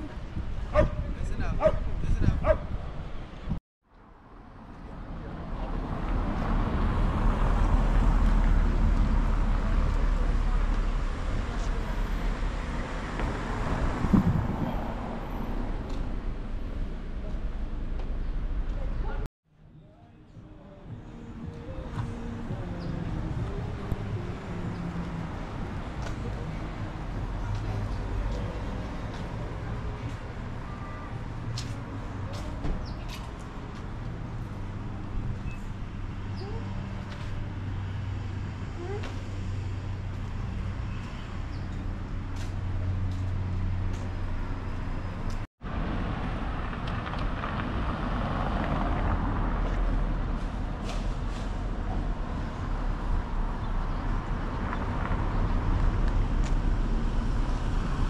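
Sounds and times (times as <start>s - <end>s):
low engine hum of traffic: 0.0s - 58.0s.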